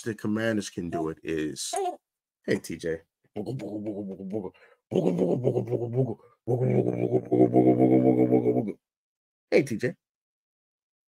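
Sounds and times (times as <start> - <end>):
man humming: 4.9 - 8.8.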